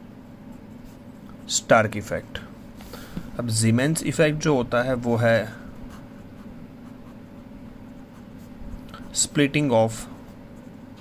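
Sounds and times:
pen scratching on paper: 5.8s - 9.7s.

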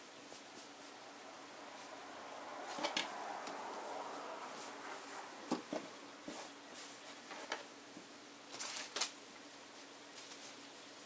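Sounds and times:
rustling of fabric: 0.0s - 9.2s, 9.8s - 11.0s.

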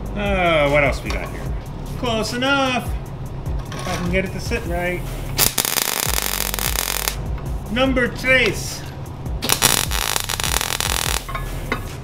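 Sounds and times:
electronic music beat: 4.7s - 7.2s, 9.4s - 11.3s
welder arc crackling: 5.4s - 7.2s, 9.4s - 11.3s.

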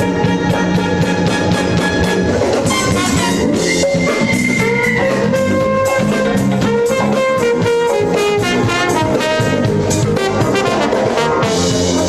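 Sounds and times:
drum kit and percussion beat: 0.0s - 12.0s
live jazz-funk band: 0.0s - 12.0s
saxophone and trumpet horns: 0.0s - 12.0s.

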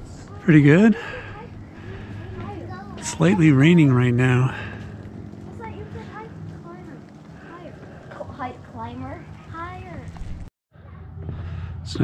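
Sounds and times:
faint voices talking: 0.0s - 10.2s
man speaking: 0.4s - 1.1s, 3.0s - 4.8s.

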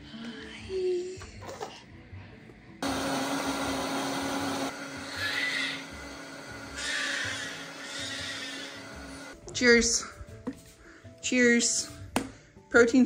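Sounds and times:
blender motor running: 2.8s - 9.4s.

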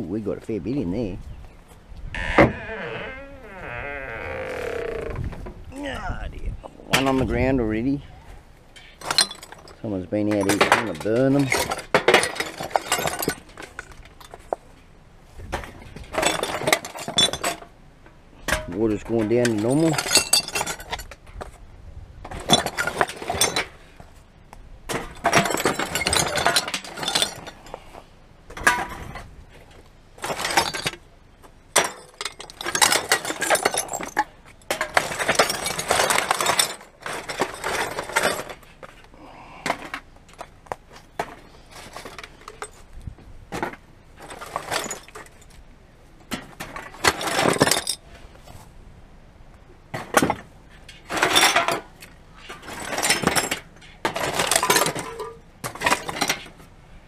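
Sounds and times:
glass bottles and cans clattering: 8.8s - 14.6s, 15.6s - 17.8s, 18.5s - 21.2s, 22.3s - 23.8s, 24.9s - 27.8s, 28.5s - 29.3s, 30.2s - 31.1s, 31.7s - 38.9s, 39.7s - 42.8s, 43.5s - 45.6s, 46.3s - 48.0s, 49.9s - 56.7s.

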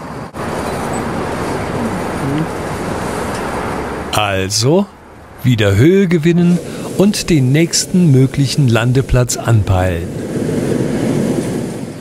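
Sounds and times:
propane burner roaring: 0.0s - 12.0s.

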